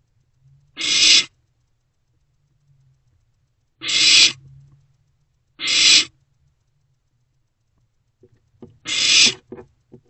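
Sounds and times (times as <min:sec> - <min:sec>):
owlets hissing: 0:00.8 - 0:01.3, 0:03.8 - 0:04.4, 0:05.6 - 0:06.2, 0:08.8 - 0:09.5.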